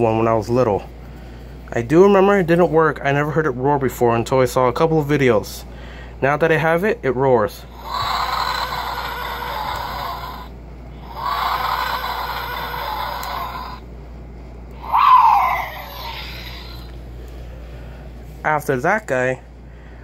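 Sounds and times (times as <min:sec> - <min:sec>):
toy electronic roars: 0:07.7 - 0:13.8, 0:14.8 - 0:17.0.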